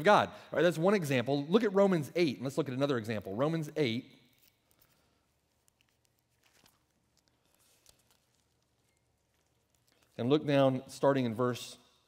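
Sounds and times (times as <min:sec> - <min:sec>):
pages being turned: 0:04.3 - 0:10.3.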